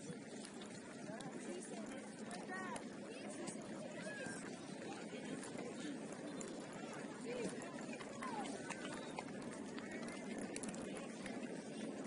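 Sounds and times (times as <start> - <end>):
distant voices of players and spectators: 0.0 - 12.0.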